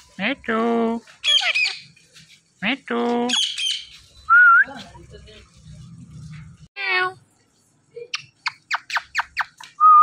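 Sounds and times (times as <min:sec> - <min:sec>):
parakeet talking: 0:01.2 - 0:01.9, 0:03.3 - 0:03.9
shrill parakeet squawks: 0:01.2 - 0:01.9.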